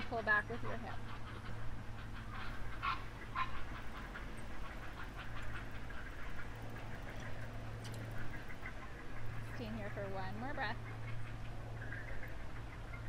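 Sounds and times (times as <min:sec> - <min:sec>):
steady low hum: 0:00.0 - 0:13.0
waterfowl calling: 0:00.0 - 0:13.0.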